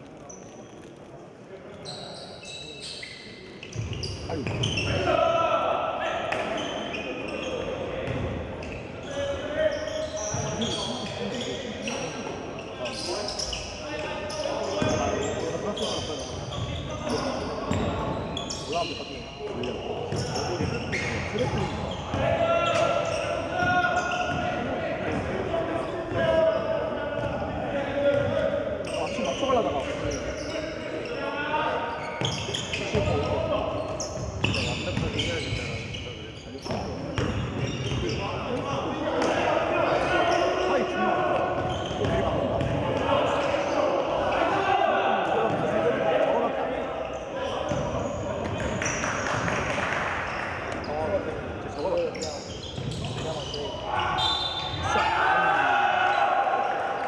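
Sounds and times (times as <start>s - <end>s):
voices calling out in a hall: 0.0s - 57.0s.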